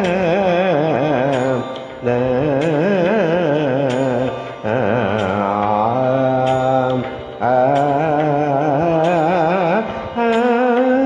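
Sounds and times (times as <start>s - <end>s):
man singing sustained note: 0.0s - 11.0s.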